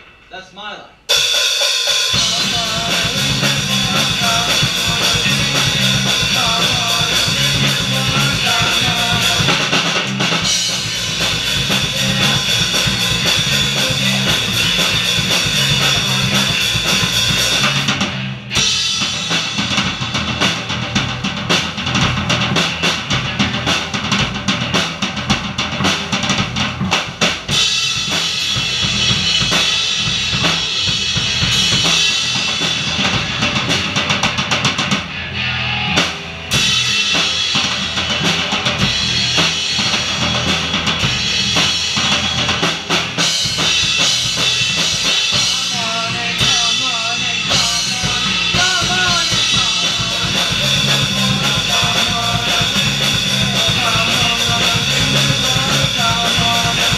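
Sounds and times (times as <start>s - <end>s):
drums hitting densely: 0.0s - 35.1s, 36.0s - 56.9s
rock band playing: 0.0s - 56.9s.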